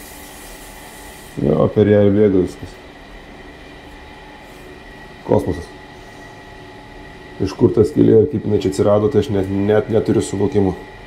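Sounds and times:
mechanical hum with whine: 0.0s - 11.0s.

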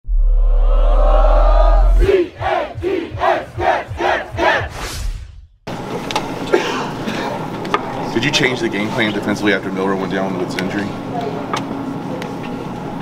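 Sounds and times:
deep bass tone: 0.0s - 5.6s
crowd chanting shouts: 0.7s - 4.8s.

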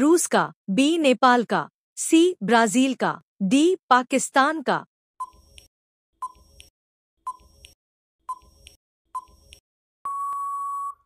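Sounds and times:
long steady beep: 10.0s - 11.0s.

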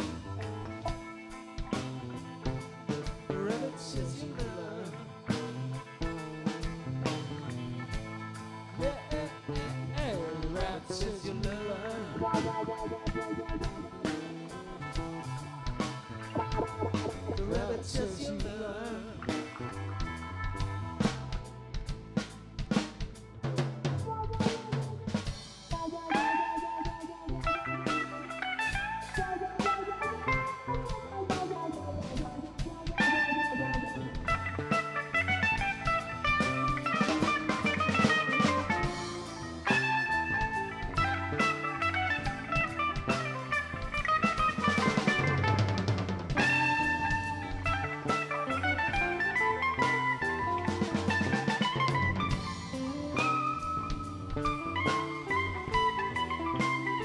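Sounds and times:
drum kit: 0.0s - 57.0s.

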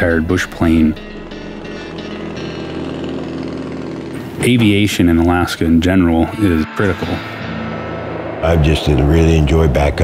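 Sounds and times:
plane piston engine droning: 0.0s - 10.0s.

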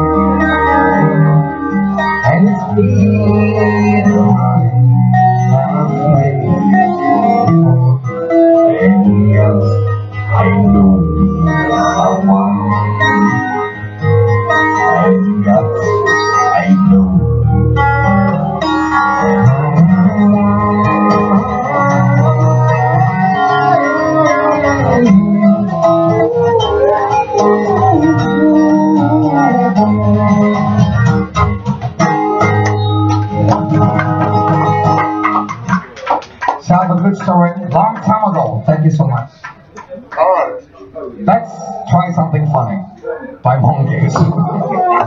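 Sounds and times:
man singing: 0.0s - 31.4s, 33.3s - 35.0s
acoustic guitar: 0.0s - 45.0s
organ-like keyboard: 0.0s - 45.0s.

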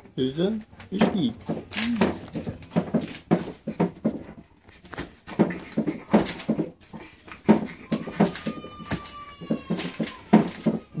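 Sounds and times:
baby cooing and babbling: 7.0s - 11.0s.

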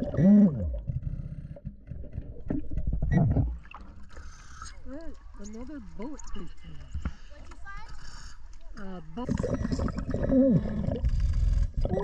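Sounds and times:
muffled underwater rumble: 9.2s - 12.0s.

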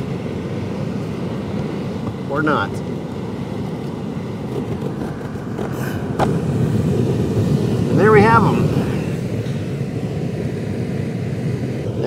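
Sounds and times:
low rumble: 0.7s - 12.0s.

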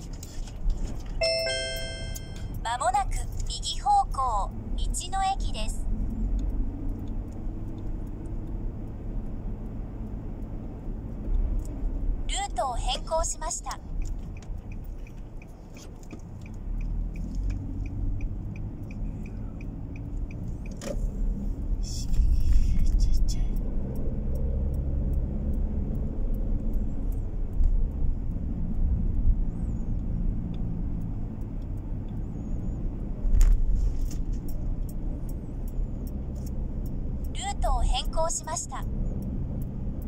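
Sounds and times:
car engine and road noise: 0.0s - 40.0s
turn signal ticking: 0.0s - 40.0s.

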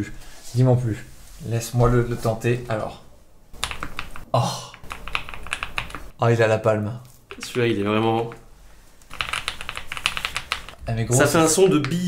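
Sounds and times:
fast mechanical keyboard typing: 3.6s - 4.2s, 4.8s - 6.1s, 9.1s - 10.8s.

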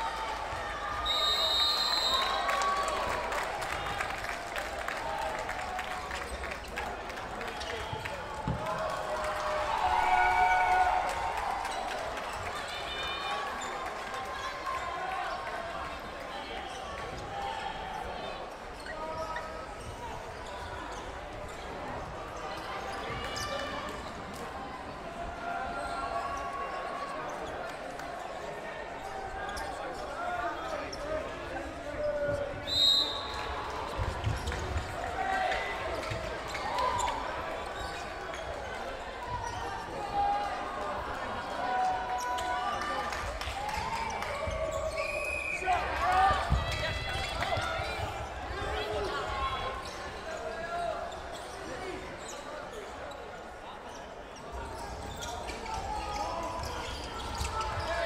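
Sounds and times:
whistle blast: 1.0s - 2.4s, 32.6s - 33.4s.

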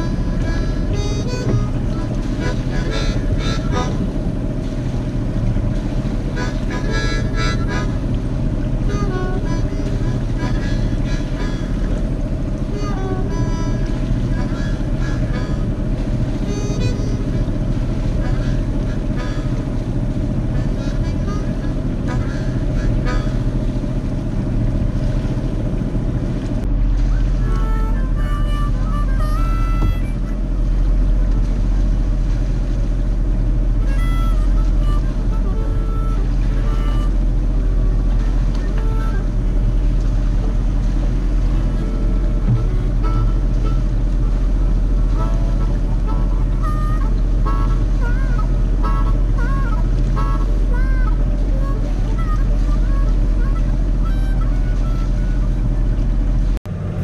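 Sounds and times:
diesel engine droning: 0.0s - 57.0s.

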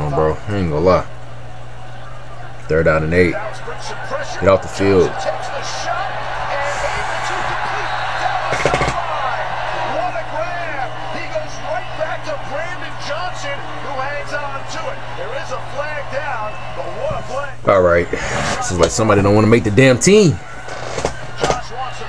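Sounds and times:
announcers calling play: 0.0s - 22.0s
steady low broadcast hum: 0.0s - 22.0s.

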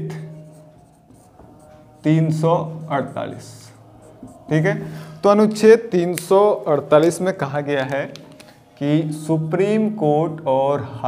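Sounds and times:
marker writing on whiteboard: 0.0s - 8.6s
person speaking: 0.0s - 10.4s.

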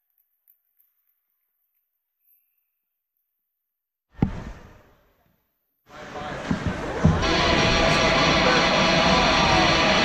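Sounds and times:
dull thuds: 4.2s - 4.8s
voices: 5.9s - 10.0s.

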